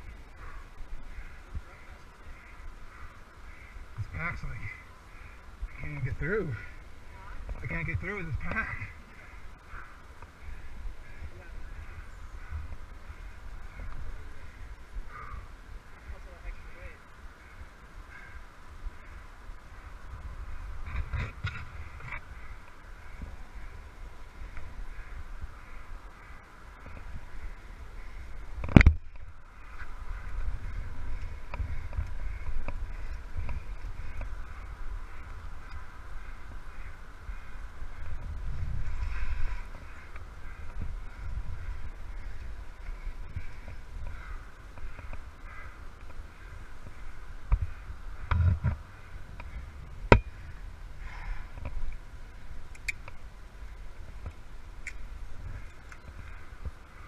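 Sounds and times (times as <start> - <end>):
low wind rumble: 0.0 - 57.0.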